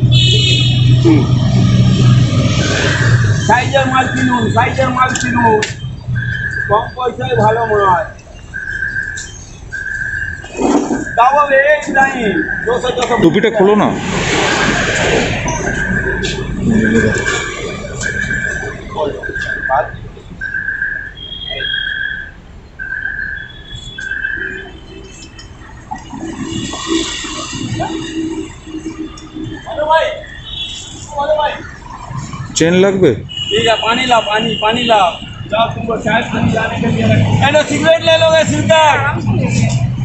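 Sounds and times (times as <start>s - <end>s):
high whistle-like tone: 2.8s - 11.6s, 15.4s - 22.4s.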